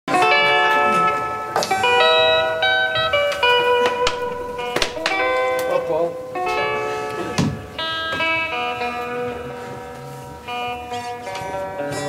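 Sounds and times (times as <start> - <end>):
acoustic guitar picking: 0.1 - 12.0
bass guitar: 0.1 - 12.0
ringing electric guitar notes: 0.1 - 12.0.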